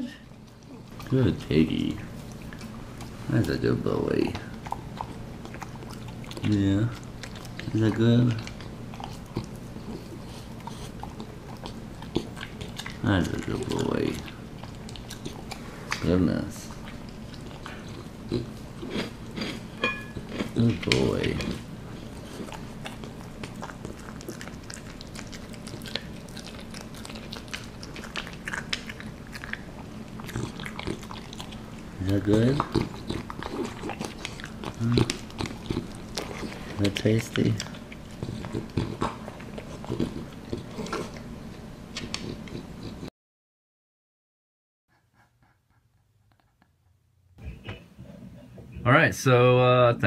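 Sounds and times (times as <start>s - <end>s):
dog chewing meat: 0.2s - 43.1s.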